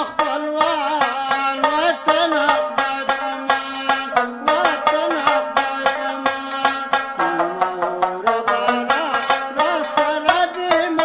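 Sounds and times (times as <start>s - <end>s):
plucked lute folk melody: 0.0s - 11.0s.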